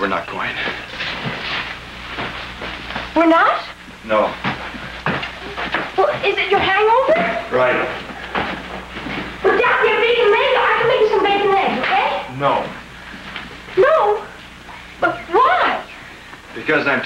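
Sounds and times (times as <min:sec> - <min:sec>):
people speaking: 0:00.0 - 0:00.8, 0:06.0 - 0:08.0, 0:09.4 - 0:12.8, 0:15.0 - 0:15.9.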